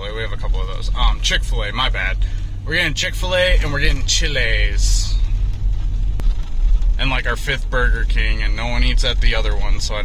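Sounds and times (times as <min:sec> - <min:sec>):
vehicle engine and road rumble: 0:00.0 - 0:10.0.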